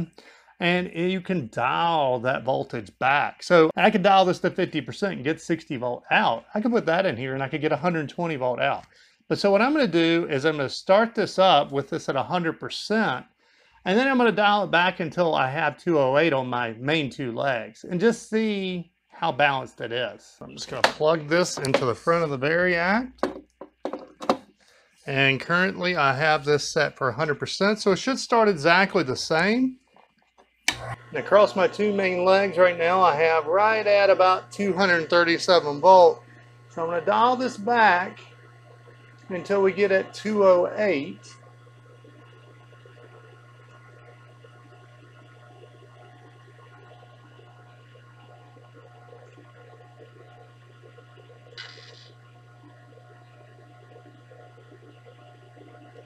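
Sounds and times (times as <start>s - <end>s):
motor and transformer humming: 13.8s - 56.0s.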